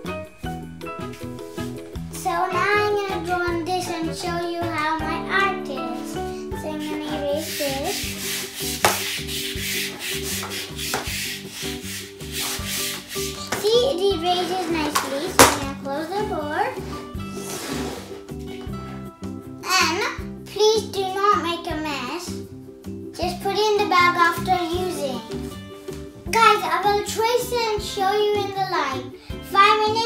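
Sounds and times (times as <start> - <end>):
eraser rubbing on chalkboard: 6.7 - 15.0, 16.8 - 18.5.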